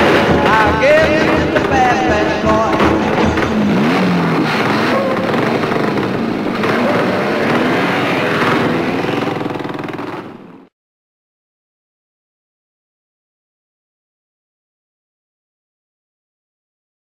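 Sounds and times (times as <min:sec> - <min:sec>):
motorcycle engines revving: 0:00.0 - 0:10.7.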